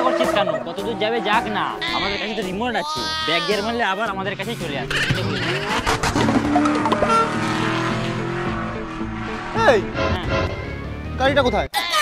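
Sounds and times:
background music: 0:00.0 - 0:12.0
race car engine revving: 0:04.7 - 0:11.1.

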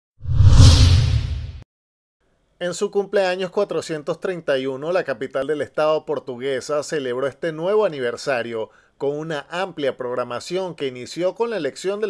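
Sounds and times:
whoosh: 0:00.2 - 0:01.6
deep boom: 0:00.3 - 0:01.6.

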